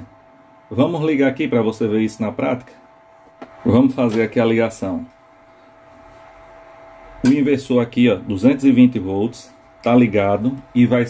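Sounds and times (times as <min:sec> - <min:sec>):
thin constant whine: 0:00.0 - 0:11.0.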